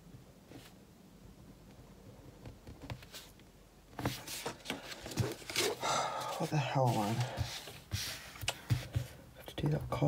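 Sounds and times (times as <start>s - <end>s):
loud sighing breath: 5.7s - 6.4s.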